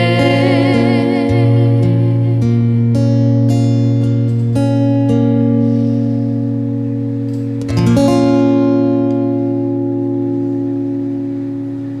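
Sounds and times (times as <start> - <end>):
acoustic guitar chord ringing: 0.0 - 12.0.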